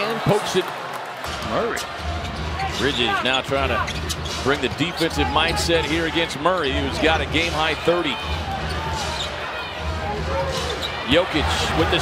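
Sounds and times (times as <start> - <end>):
sneaker squeaks: 3.4 - 6.8, 8.6 - 9.5, 10.5 - 11.1.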